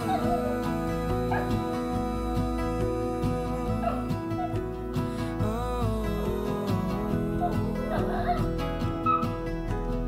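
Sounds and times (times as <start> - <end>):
background music: 0.0 - 10.0
dog whining: 7.4 - 9.3.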